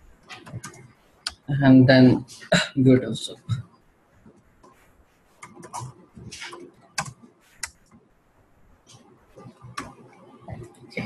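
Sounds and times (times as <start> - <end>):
computer keyboard typing: 5.4 - 7.8.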